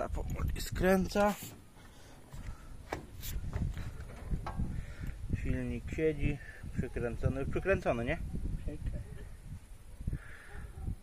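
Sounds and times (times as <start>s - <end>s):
faint rubbing and handling noise: 1.1s - 4.7s.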